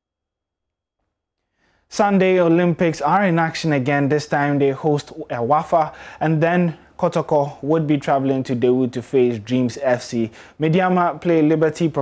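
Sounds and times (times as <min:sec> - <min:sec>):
faint intake of breath: 0:01.5 - 0:01.9, 0:05.9 - 0:06.2, 0:10.3 - 0:10.6
man speaking: 0:01.9 - 0:12.0.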